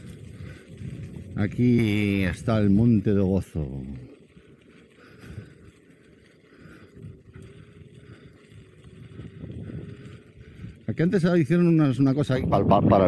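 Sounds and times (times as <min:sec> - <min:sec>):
tyre rumbling on gravel: 0:00.0 - 0:12.4.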